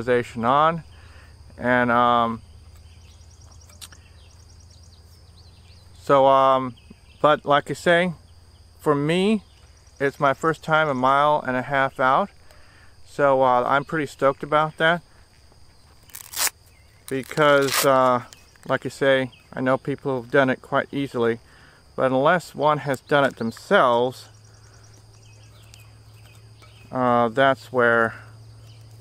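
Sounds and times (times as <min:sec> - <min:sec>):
insects chirping: 0:00.0 - 0:29.0
low rumble of road traffic: 0:00.0 - 0:29.0.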